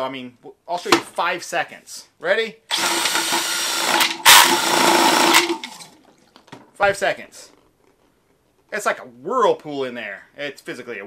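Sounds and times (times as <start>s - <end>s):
cordless drill whining: 2.7s - 6.0s.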